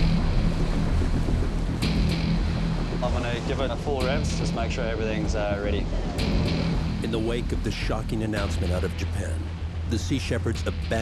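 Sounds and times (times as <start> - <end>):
boat engine drone: 0.0 - 11.0
rushing water: 0.0 - 11.0
wind: 0.0 - 11.0.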